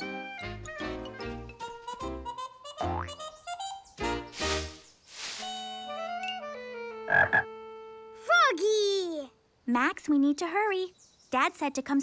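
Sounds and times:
cartoon frog croaking: 2.8s - 3.2s, 7.1s - 7.5s.

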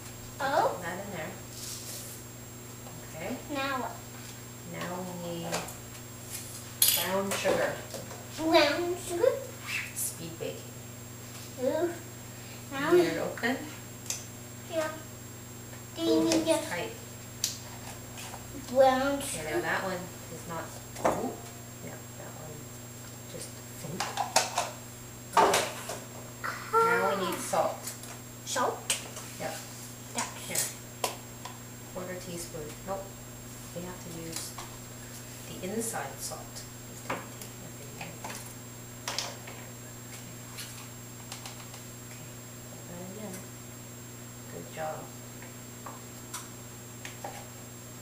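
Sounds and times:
steady low hum: 0.0s - 48.0s
faint high whine: 18.2s - 22.7s.

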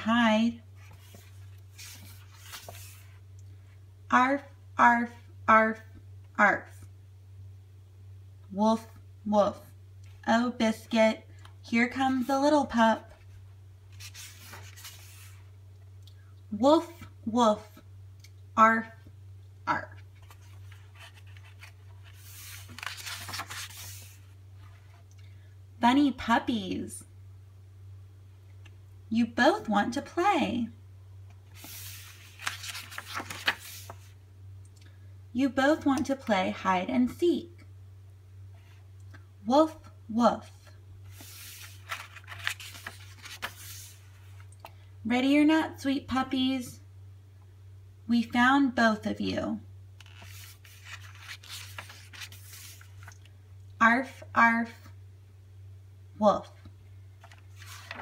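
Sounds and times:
low steady hum: 0.0s - 58.0s
book page turning: 0.8s - 3.2s, 13.9s - 15.5s, 20.0s - 25.1s, 31.5s - 34.2s, 41.1s - 44.5s, 50.0s - 53.3s, 57.2s - 58.0s.

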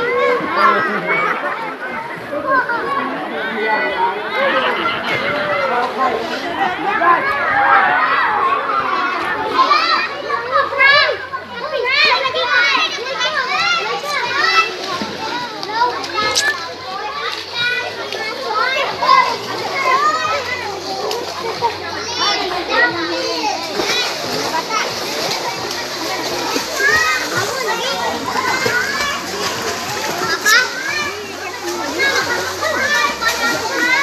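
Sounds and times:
children shouting and squealing: 0.0s - 34.0s.

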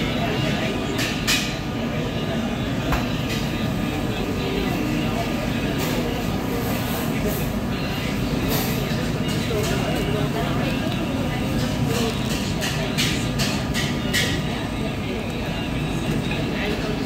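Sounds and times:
low kitchen rumble: 0.0s - 17.0s.

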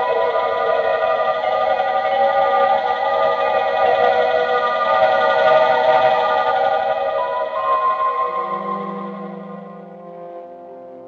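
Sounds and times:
eerie sustained high chord: 0.0s - 10.9s.

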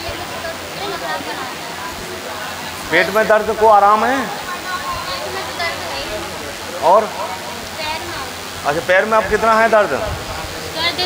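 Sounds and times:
faint voices in room: 0.0s - 11.0s
steady rushing background noise: 0.0s - 11.0s
man speaking: 2.9s - 4.3s, 8.6s - 10.2s.

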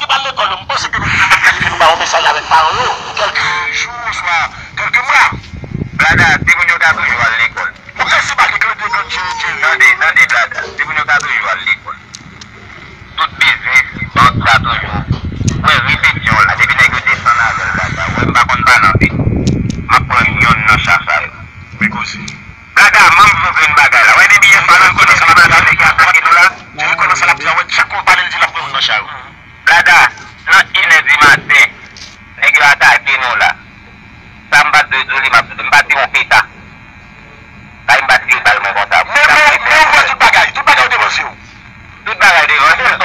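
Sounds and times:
person speaking: 0.0s - 5.4s
distorted human voice: 0.0s - 43.0s
dense low rumble: 12.0s - 23.7s.

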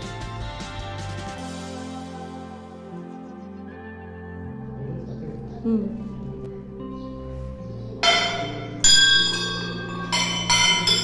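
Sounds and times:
brass bells ringing: 8.0s - 11.0s.

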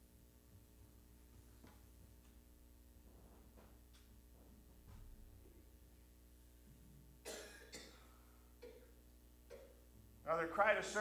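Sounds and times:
low steady hum: 0.0s - 11.0s
person coughing: 7.2s - 9.8s.

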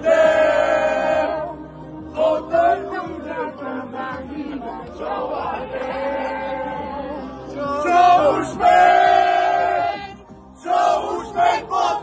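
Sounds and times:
men chanting in unison: 0.0s - 1.5s, 2.1s - 12.0s.

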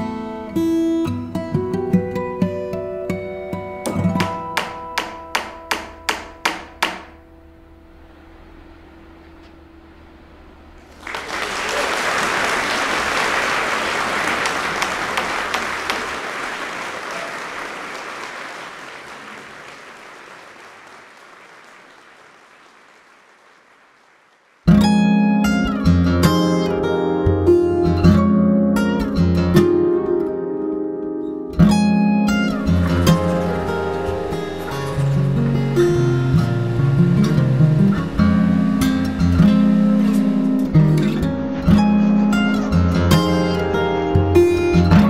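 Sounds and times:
acoustic guitar music: 0.0s - 9.8s, 24.6s - 45.0s
applause: 10.8s - 25.0s, 32.5s - 35.1s.

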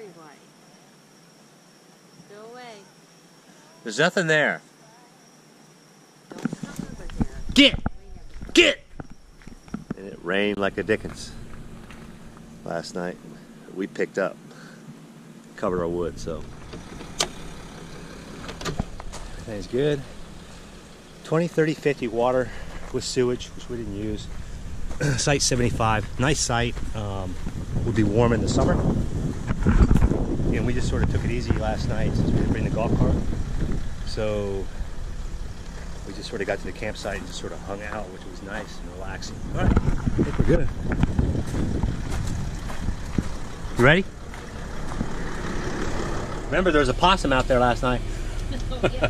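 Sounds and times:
engine idling: 6.5s - 49.0s
wind rumbling on microphone: 23.6s - 36.0s, 39.0s - 46.5s.

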